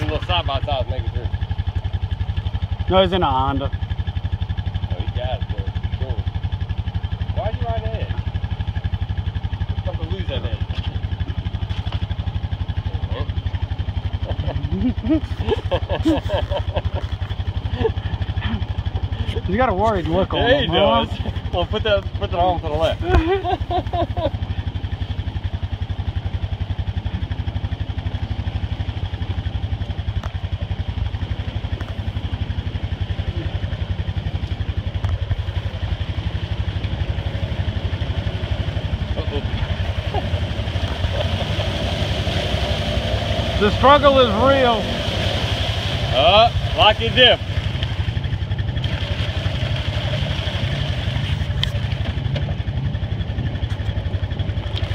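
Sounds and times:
vehicle engine idling: 0:00.0 - 0:54.9.

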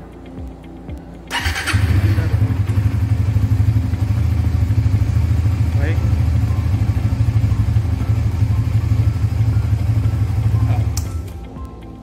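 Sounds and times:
motorcycle engine idling: 0:01.3 - 0:11.3.

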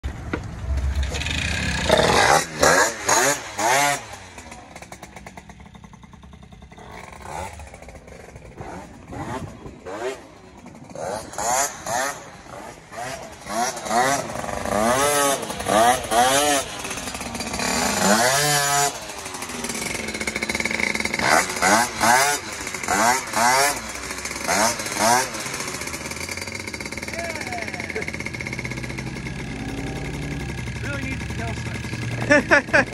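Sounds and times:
moped engine revving: 0:00.1 - 0:32.9.

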